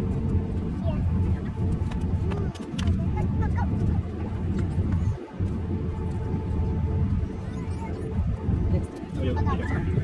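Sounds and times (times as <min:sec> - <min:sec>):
airliner cabin rumble: 0:00.0 - 0:10.0
faint voices: 0:00.8 - 0:10.0.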